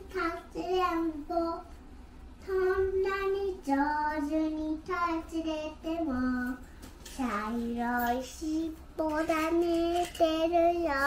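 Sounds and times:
child singing: 0:00.0 - 0:01.7, 0:02.4 - 0:06.6, 0:07.2 - 0:11.0.

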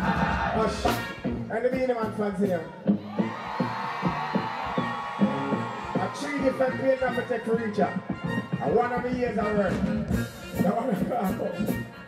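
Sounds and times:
drum beat: 0:00.0 - 0:02.2, 0:03.2 - 0:11.8
crowd noise: 0:00.0 - 0:12.0.

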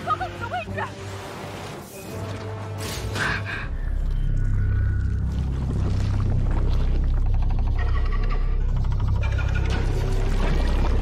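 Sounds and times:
ominous low drone: 0:03.2 - 0:11.0.

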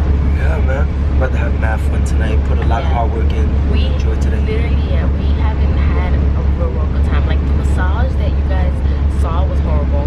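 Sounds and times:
bus rumble from inside: 0:00.0 - 0:10.0
voices: 0:00.0 - 0:10.0.

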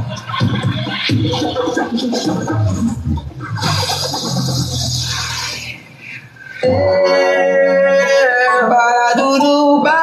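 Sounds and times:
electronic dance music: 0:00.0 - 0:10.0
hissing noise sweep: 0:01.0 - 0:06.6.

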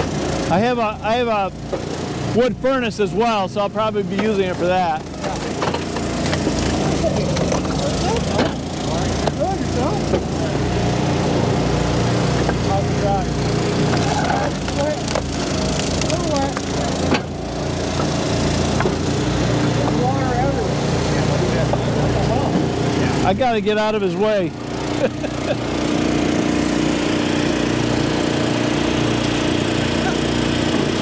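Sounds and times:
wood splitter engine running: 0:00.0 - 0:31.0
split wood clattering: 0:04.1 - 0:09.4, 0:13.8 - 0:17.4
wood cracking as it splits: 0:05.1 - 0:08.6, 0:13.8 - 0:17.4.

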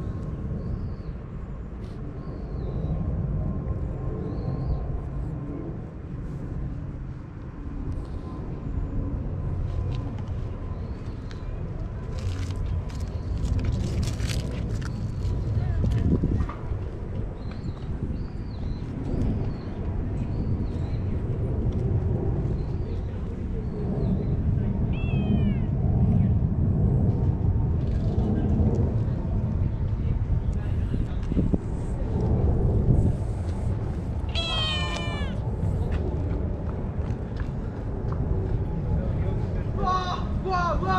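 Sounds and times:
steady low rumble: 0:00.0 - 0:40.9
cat meowing: 0:24.9 - 0:25.7, 0:34.3 - 0:35.4.

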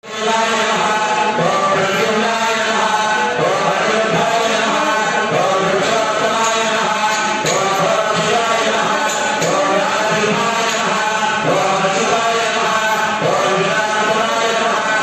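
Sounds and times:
priests chanting: 0:00.0 - 0:15.0.

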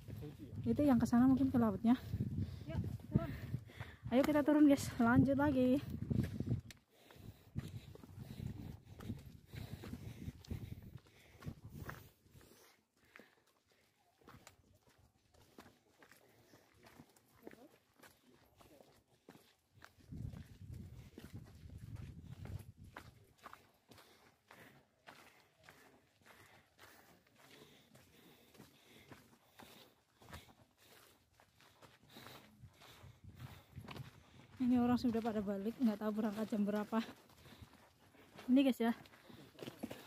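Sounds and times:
footsteps on rocky dirt trail: 0:00.0 - 0:40.0.

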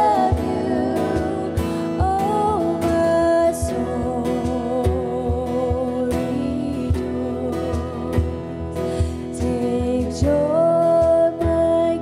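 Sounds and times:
acoustic guitar: 0:00.0 - 0:12.0
soft low drum beats: 0:00.0 - 0:12.0.

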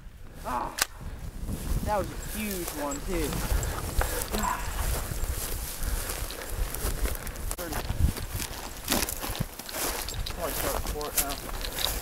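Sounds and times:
wind buffeting microphone: 0:00.0 - 0:12.0
footsteps through dry brush: 0:01.0 - 0:12.0.

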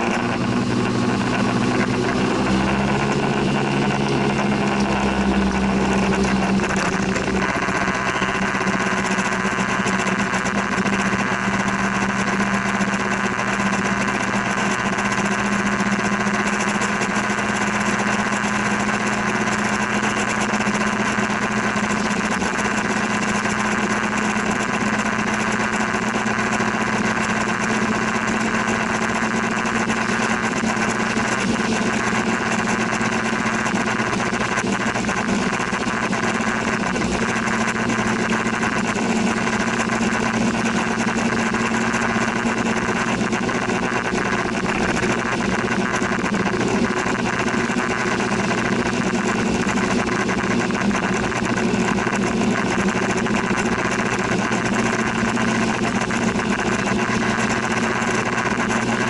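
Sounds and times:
scooter engine running: 0:00.0 - 0:59.0.

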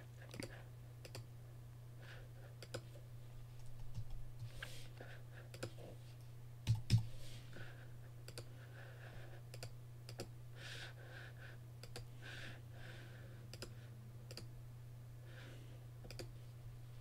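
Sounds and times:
steady low hum: 0:00.0 - 0:17.0
mouse clicks: 0:16.0 - 0:16.3.

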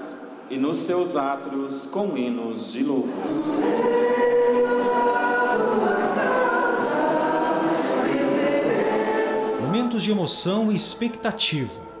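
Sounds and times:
choir singing a hymn: 0:02.8 - 0:12.0.

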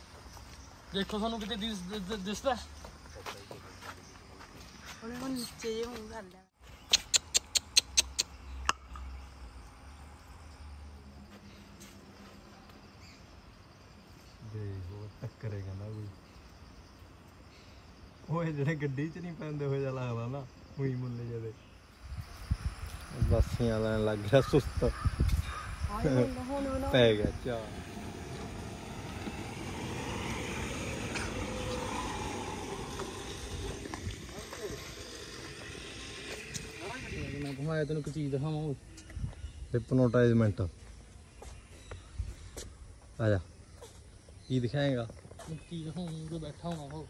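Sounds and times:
insects chirping: 0:00.0 - 0:47.0
wind noise: 0:22.0 - 0:37.8
tyres rumbling on road: 0:25.8 - 0:37.7.

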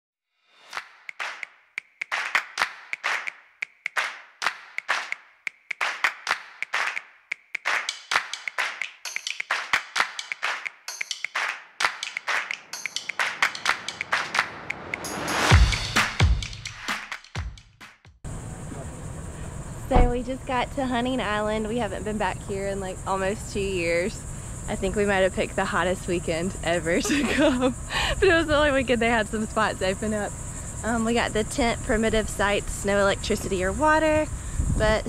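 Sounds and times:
handclap percussion beat: 0:00.6 - 0:18.1
upbeat intro music: 0:00.6 - 0:18.1
rising sweep: 0:12.6 - 0:16.8.

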